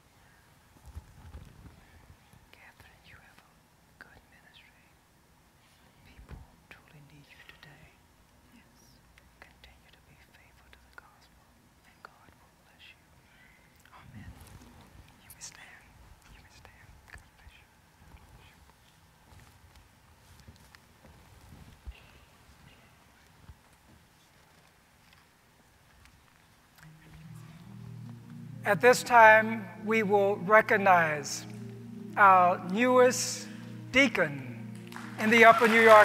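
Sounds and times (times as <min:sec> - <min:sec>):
faint whispering: 0:01.6 - 0:05.0, 0:05.6 - 0:18.9, 0:21.8 - 0:23.3, 0:26.7 - 0:34.1
small rustles and clicks: 0:18.0 - 0:26.8.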